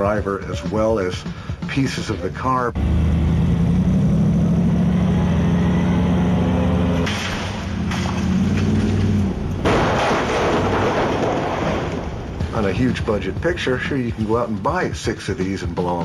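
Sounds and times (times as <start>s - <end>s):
car engine running hard: 2.8s - 9.9s.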